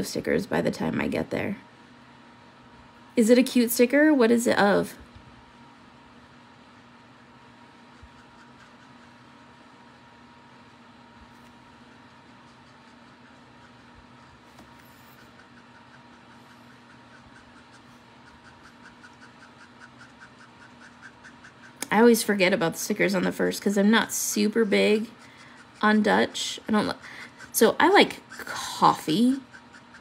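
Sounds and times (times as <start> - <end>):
faint room hum: 0.0 - 30.0
marker scratching on cardstock: 7.9 - 9.2, 10.7 - 30.0.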